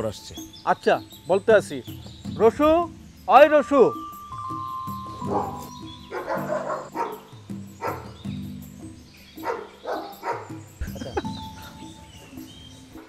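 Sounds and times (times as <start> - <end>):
background music with low notes: 0.0 - 13.0
dogs barking: 5.2 - 8.2, 9.4 - 11.2.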